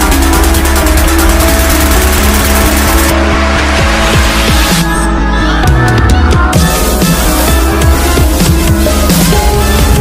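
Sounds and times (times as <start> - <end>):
electronic music with heavy bass: 0.0 - 10.0.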